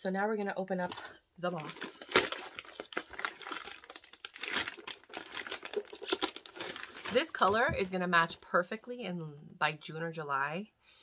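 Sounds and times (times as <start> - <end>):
packaging crinkling and rustling: 0.8 - 8.4.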